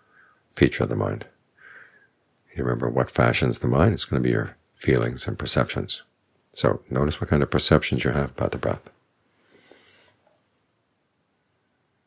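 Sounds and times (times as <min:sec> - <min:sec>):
high whistling animal call: 0:09.4 - 0:10.1.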